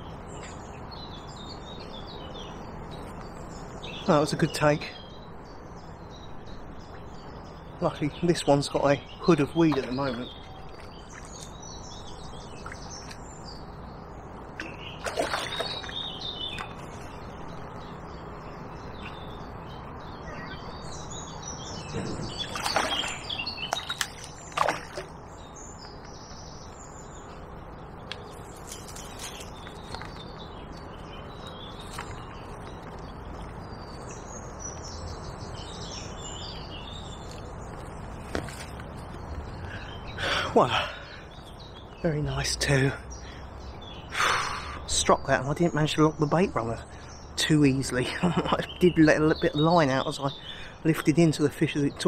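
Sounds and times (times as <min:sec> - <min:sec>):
birds chirping: 0:00.0 - 0:52.0
faint outdoor noise: 0:00.0 - 0:52.0
fish splashing at surface: 0:15.0 - 0:15.9.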